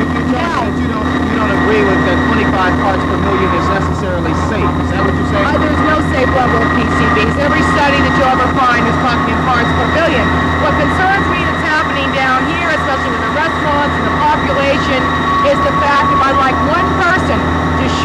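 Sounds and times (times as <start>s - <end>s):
loud machine drone: 0.0s - 18.0s
woman talking: 4.6s - 18.0s.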